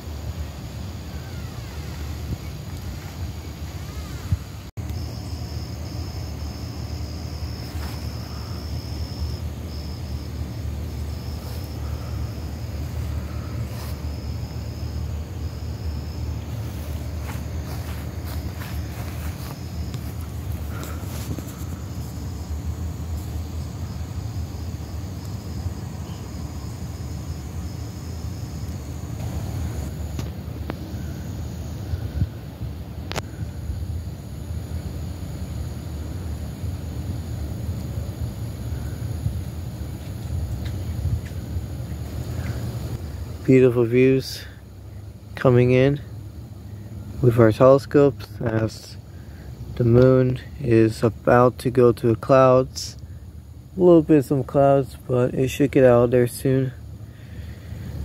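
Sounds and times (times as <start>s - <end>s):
low outdoor rumble at night: 0.0s - 58.0s.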